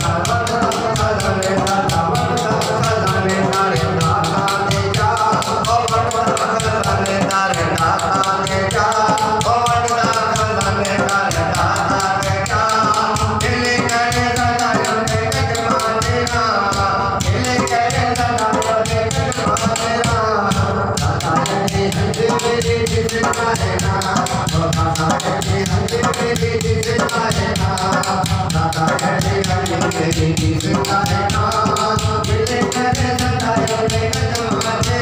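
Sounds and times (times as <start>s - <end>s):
hand drum fast beat: 0.0s - 35.0s
man singing into a microphone: 0.0s - 35.0s.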